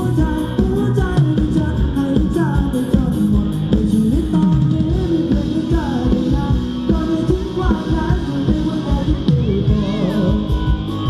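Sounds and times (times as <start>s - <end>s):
live dance song over loudspeakers: 0.0s - 11.0s.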